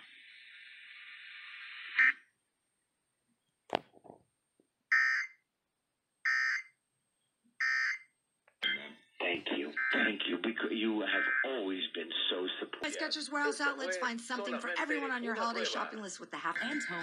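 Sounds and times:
radio hiss: 0.0s - 2.1s, 8.6s - 17.0s
digital data bursts from radio: 9.5s - 10.5s, 11.1s - 11.6s, 12.6s - 17.0s.

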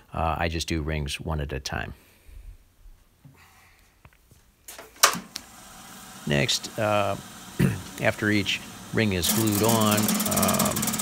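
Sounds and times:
wood lathe humming: 5.4s - 11.0s.

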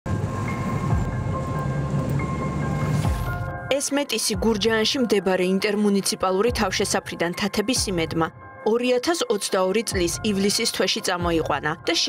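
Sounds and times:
car engine and tyre rumble: 0.1s - 3.5s.

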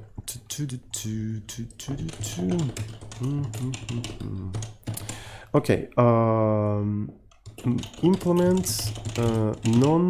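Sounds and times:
keyboard typing: 0.0s - 5.4s, 7.2s - 10.0s
low muttered voice: 0.2s - 4.7s.

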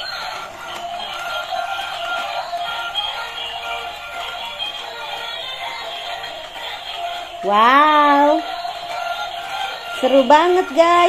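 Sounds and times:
tinny electronic toy music: 0.0s - 11.0s.

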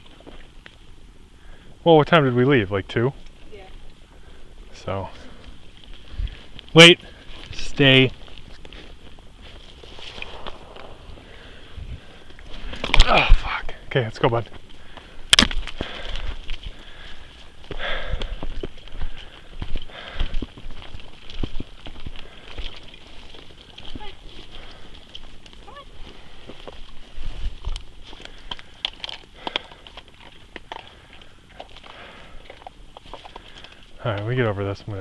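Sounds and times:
footsteps rustling through leaves: 5.9s - 12.9s.

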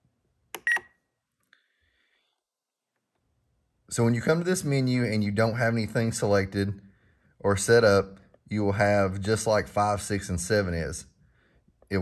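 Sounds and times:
faint longer beep: 0.6s - 0.9s.

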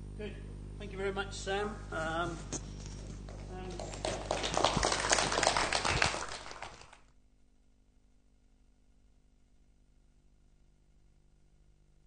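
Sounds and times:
audience applauding: 3.5s - 7.1s.

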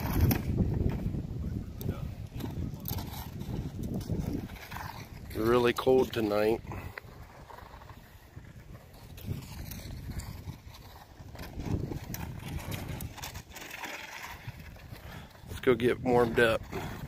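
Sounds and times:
wind on microphone: 0.0s - 17.0s.

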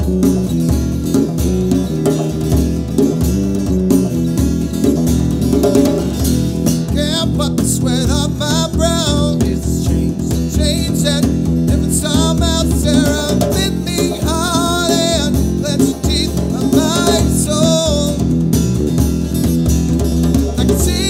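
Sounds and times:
acoustic guitar: 0.0s - 21.0s
djembe drum: 0.0s - 21.0s
electric bass: 0.0s - 21.0s
man singing: 6.8s - 18.5s, 20.4s - 21.0s.

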